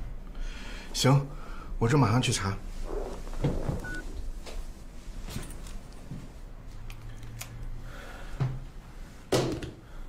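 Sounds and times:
mobile phone beep: 3.8s - 4.1s.

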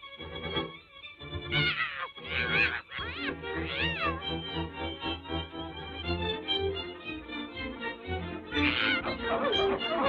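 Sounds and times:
cartoon soundtrack music: 0.0s - 10.0s
high wavering animal-like cries: 1.4s - 4.4s, 8.5s - 10.0s.

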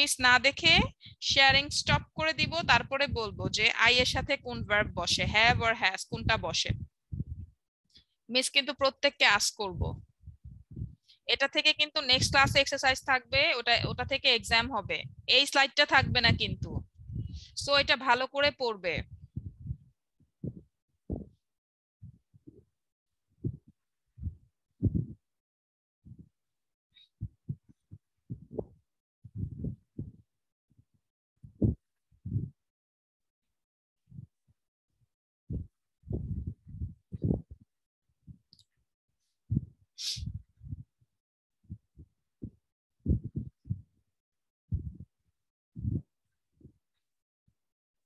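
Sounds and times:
muffled low thumps: 0.6s - 7.6s, 9.6s - 11.0s, 11.9s - 21.4s, 23.4s - 25.2s, 27.2s - 30.2s, 31.4s - 32.6s, 35.5s - 37.6s, 39.5s - 40.9s, 41.7s - 43.9s, 44.7s - 45.1s, 45.8s - 46.8s.

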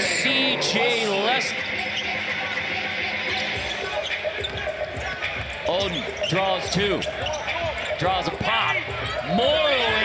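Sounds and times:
arena crowd hubbub: 0.0s - 10.0s.

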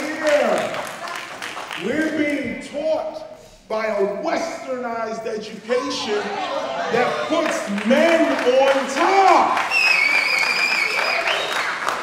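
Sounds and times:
audience applauding: 0.0s - 2.4s, 6.9s - 12.0s.

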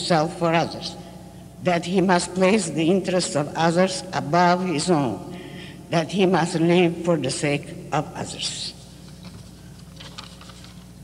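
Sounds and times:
faint low steady hum: 0.0s - 11.0s
microphone clicks and rustles: 8.8s - 11.0s.

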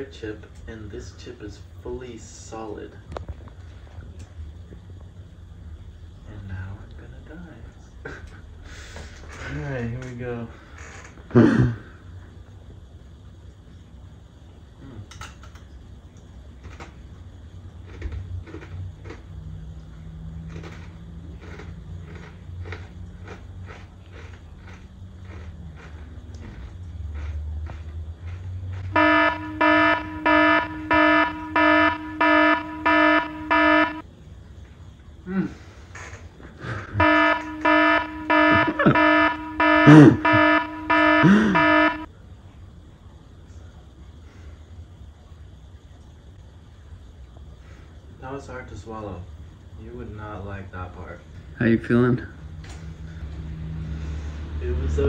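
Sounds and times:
chip crunching: 17.8s - 19.3s, 20.4s - 28.9s
electronic alarm beeping: 28.9s - 34.0s, 36.9s - 42.1s.

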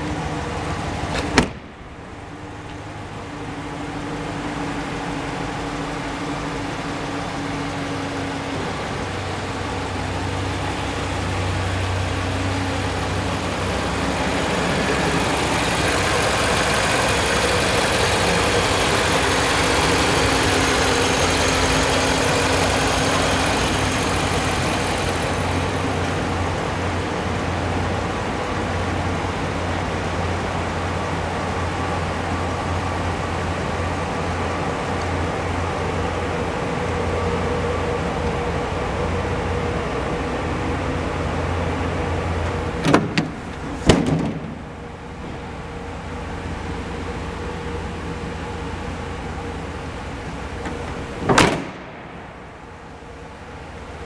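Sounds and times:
truck engine idling: 0.0s - 54.0s.

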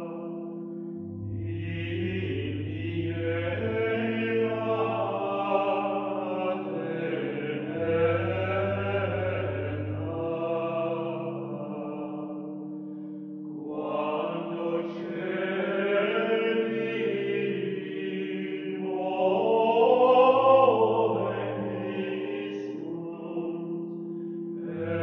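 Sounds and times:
voices singing a slow chant: 0.0s - 12.8s, 13.5s - 25.0s
low drone: 0.0s - 25.0s.

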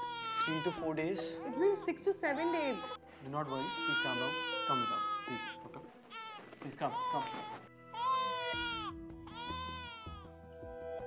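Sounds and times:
infant crying: 0.0s - 10.3s
background music with held notes: 0.0s - 11.0s.

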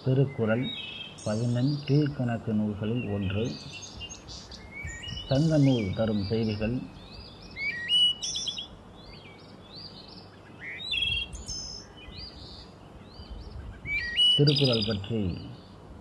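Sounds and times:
small birds chirping: 0.0s - 16.0s
man's voice: 1.3s - 3.7s, 5.3s - 6.9s, 14.4s - 15.6s.

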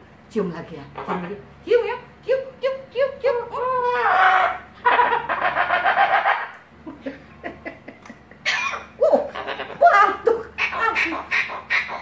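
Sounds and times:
cockatoo raspy chatter: 3.8s - 6.6s, 8.4s - 12.0s.

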